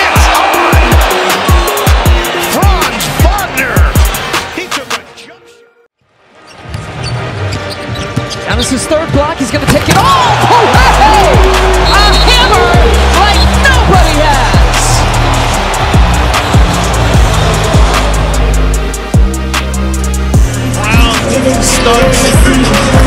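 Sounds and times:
music with heavy bass beat: 0:00.0 - 0:04.9, 0:10.7 - 0:23.0
sneakers squeaking on court: 0:06.4 - 0:09.2
arena noise: 0:09.3 - 0:18.8.

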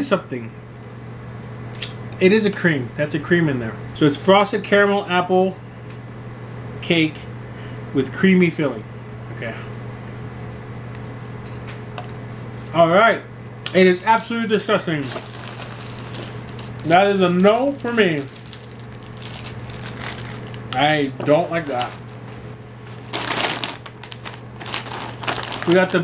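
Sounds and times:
steady low hum: 0:00.0 - 0:26.0
foil snack bag crinkling: 0:15.0 - 0:20.7, 0:21.4 - 0:26.0.

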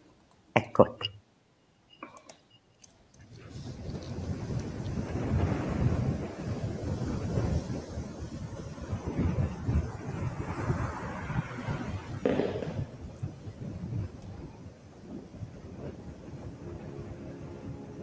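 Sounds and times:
rushing rumbling noise: 0:03.3 - 0:18.0.

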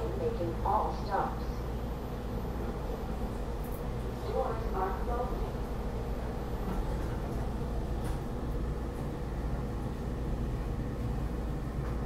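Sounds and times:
train car hum and hiss: 0:00.0 - 0:12.0.

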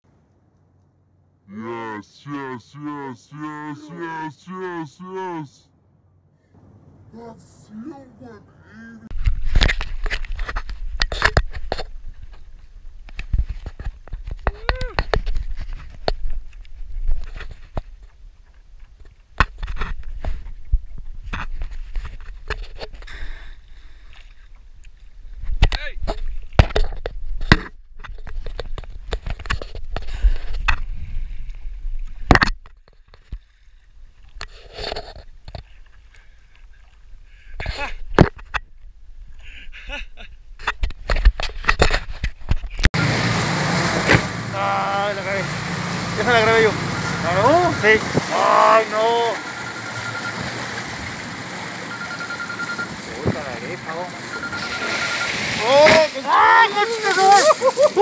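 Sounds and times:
excited shouting voices: 0:01.5 - 0:05.6, 0:55.6 - 0:58.0
wind rumbling on microphone: 0:09.1 - 0:23.0, 0:24.7 - 0:32.4
water sloshing and splashing: 0:09.2 - 0:39.4, 0:40.5 - 0:58.0.

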